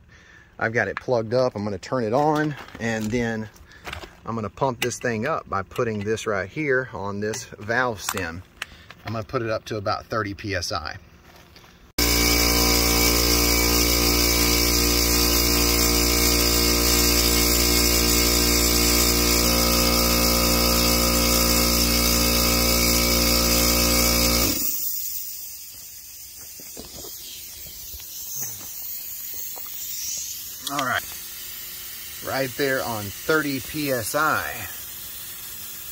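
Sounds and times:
air compressor running: 12.0 - 35.9.

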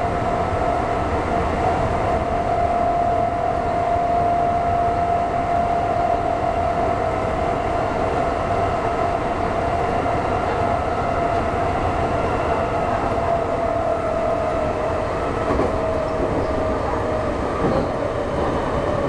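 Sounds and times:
train running through a tunnel: 0.0 - 19.0.

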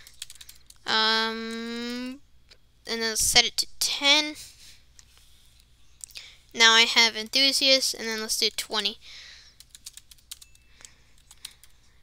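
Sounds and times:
faint keyboard typing: 0.0 - 2.1, 9.4 - 12.0.

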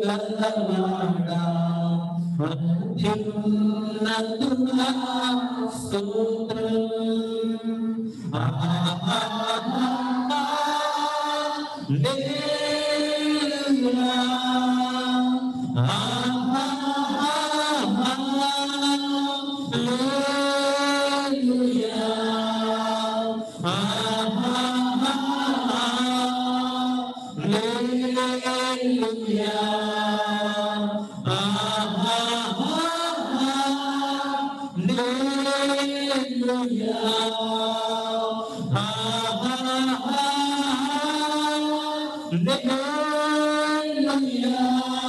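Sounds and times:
worship singers chanting a chorus: 0.0 - 45.0.

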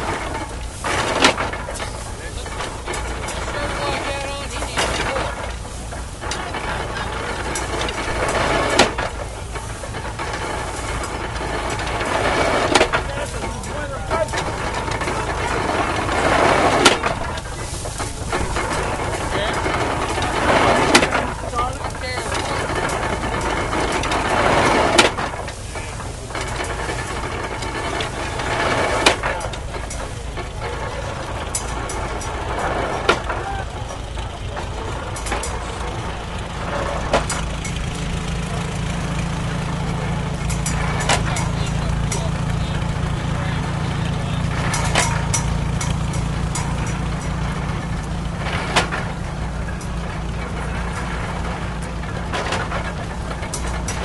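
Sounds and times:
hay baler knocking: 0.0 - 54.0
rustling hay: 0.0 - 54.0
tractor engine hum: 0.0 - 54.0.

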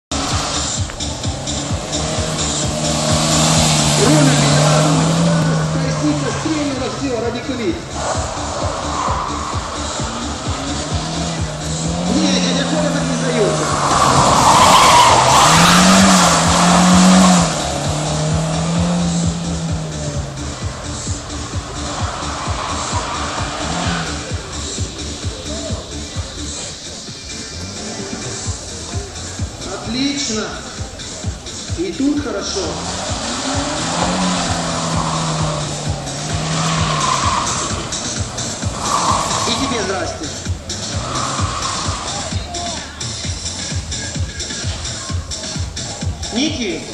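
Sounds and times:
car engine revving: 0.0 - 46.9
music with steady beat: 0.1 - 46.9
tyres squealing: 0.1 - 46.9.

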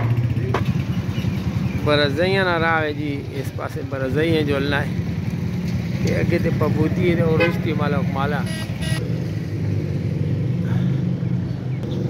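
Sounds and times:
vehicle engine humming: 0.0 - 12.0.

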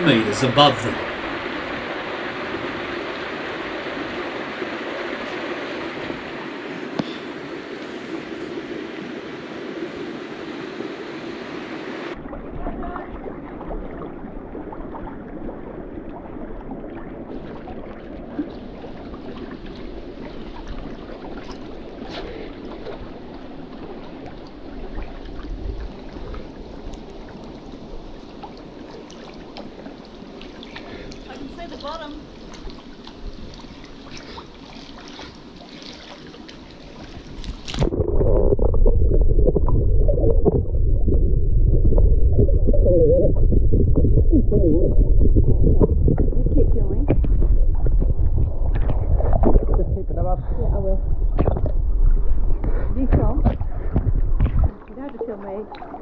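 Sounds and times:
creek water rushing and gurgling: 0.0 - 50.3
swimmer splashing: 32.7 - 38.0.

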